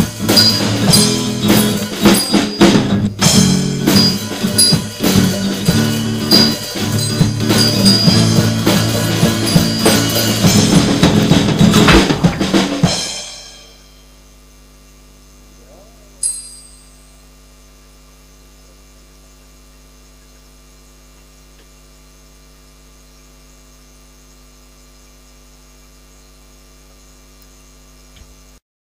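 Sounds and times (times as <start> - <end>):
electrical mains hum: 0.0 - 28.6.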